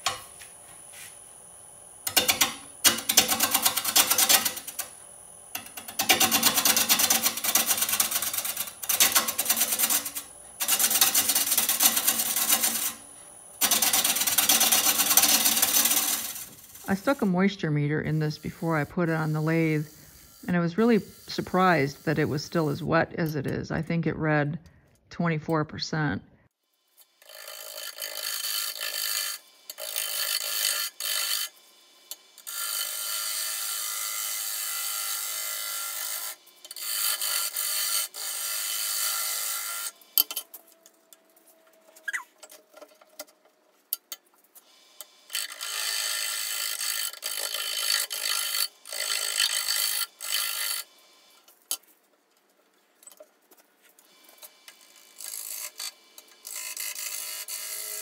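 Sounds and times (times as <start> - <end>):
wood lathe gouge shearing hiss: 18.2 - 22.8.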